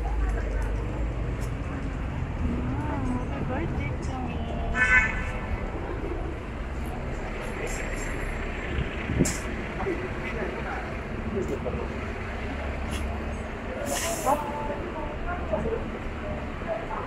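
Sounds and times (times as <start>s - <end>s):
low street rumble: 0.0s - 17.0s
indistinct chatter: 9.4s - 17.0s
short hiss: 13.8s - 14.4s.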